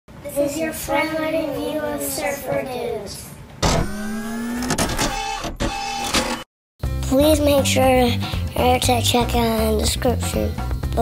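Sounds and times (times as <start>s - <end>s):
mechanical whir with hum: 3.6s - 6.5s.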